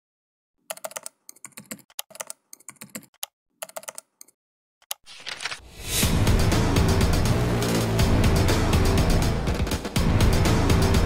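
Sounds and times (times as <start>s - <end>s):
typing on computer keyboard: 0.7s - 5.4s.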